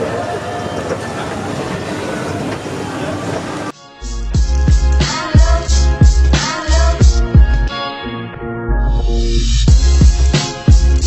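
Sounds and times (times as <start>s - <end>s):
indistinct voices: 0.0s - 3.8s
steady hum of hall: 0.0s - 3.8s.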